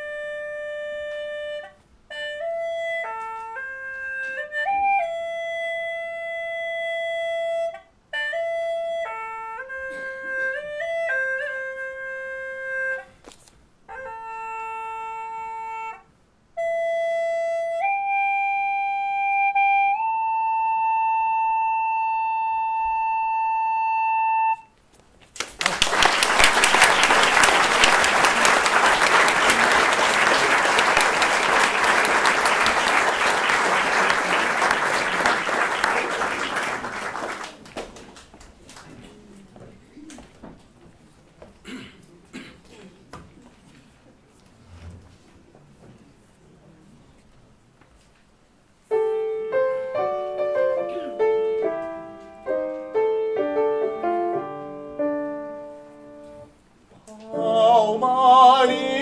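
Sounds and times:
flute solo melody: 0:00.0 - 0:13.0, 0:16.6 - 0:24.7
audience applauding: 0:25.4 - 0:39.1.

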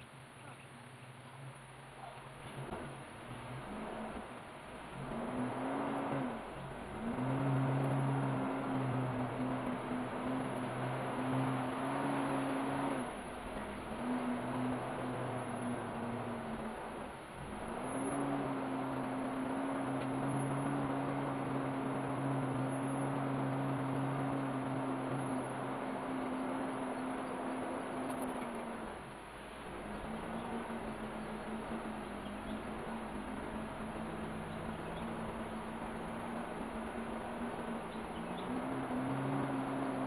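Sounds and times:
car engine running steadily: 0:00.0 - 0:40.0
tyres on dirt track: 0:00.0 - 0:40.0.

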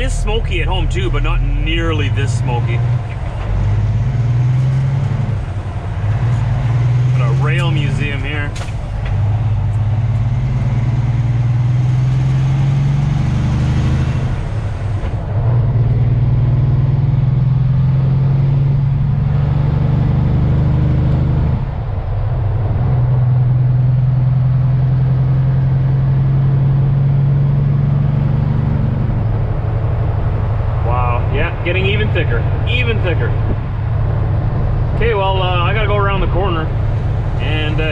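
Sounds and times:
truck diesel engine humming: 0:00.0 - 0:37.9.

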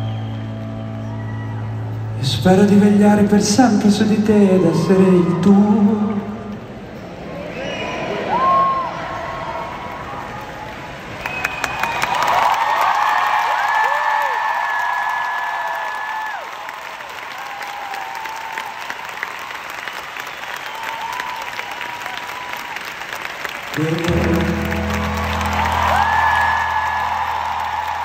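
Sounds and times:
crowd applauding and cheering: 0:00.0 - 0:03.0, 0:08.3 - 0:28.0.

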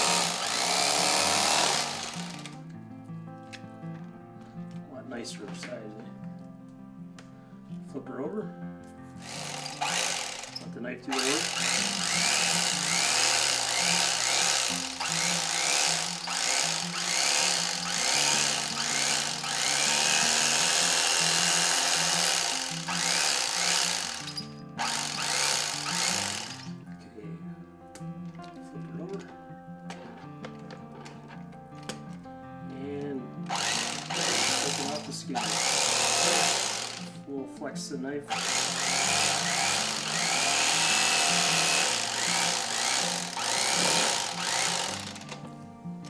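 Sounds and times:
electric knife motor buzzing: 0:00.0 - 0:02.6, 0:09.2 - 0:26.8, 0:33.4 - 0:37.2, 0:38.3 - 0:45.4.

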